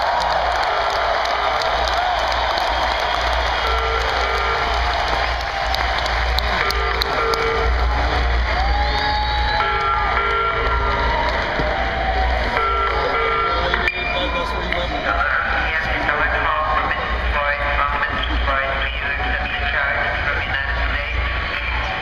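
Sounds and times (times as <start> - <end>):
distant live rock band: 0.0 - 20.2
crowd noise: 0.0 - 22.0.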